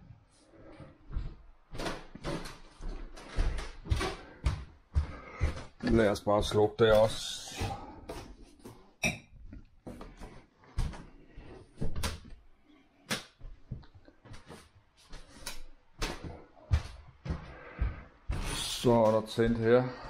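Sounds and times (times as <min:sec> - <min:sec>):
footsteps on wooden floor: 0:00.0 - 0:08.9, 0:09.8 - 0:12.4, 0:13.4 - 0:20.0.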